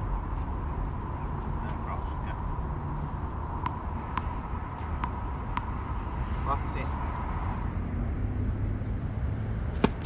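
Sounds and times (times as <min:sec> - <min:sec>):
tennis racket striking ball: 0:03.6 - 0:05.7, 0:09.7 - 0:10.0.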